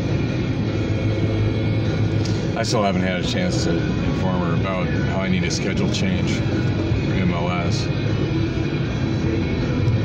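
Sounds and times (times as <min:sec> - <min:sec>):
car cabin road and engine noise: 0:00.0 - 0:10.0
music playing: 0:00.0 - 0:10.0.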